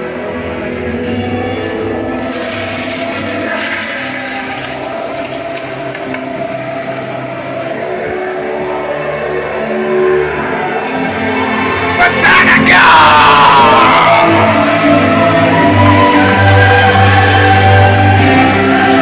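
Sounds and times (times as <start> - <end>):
music playing: 0.0 - 19.0
toilet flushing: 1.9 - 9.1.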